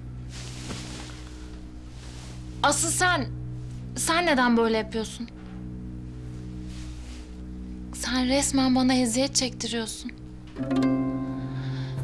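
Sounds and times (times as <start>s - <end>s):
faint hiss: 0.0s - 4.1s, 6.4s - 8.2s
soft dramatic score low notes: 0.0s - 12.0s.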